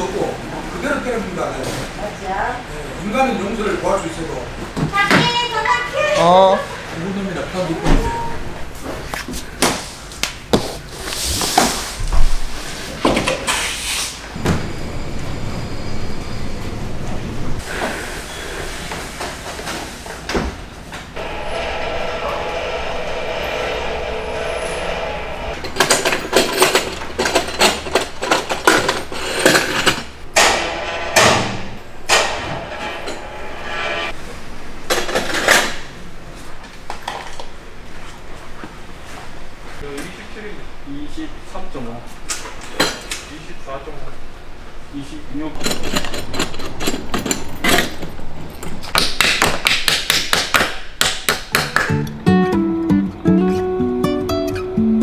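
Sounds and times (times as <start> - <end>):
steady mechanical whir: 21.2 - 25.7
metal clanks and knocks: 25.6 - 33.6, 45.5 - 49.0.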